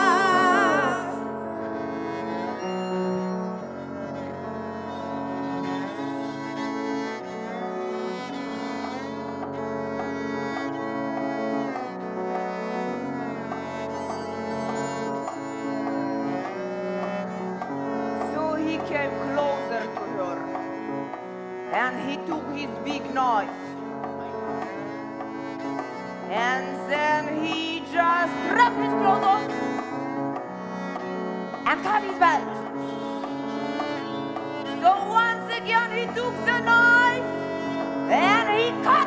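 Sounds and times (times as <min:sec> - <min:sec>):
bowed strings: 0:00.0 - 0:39.0.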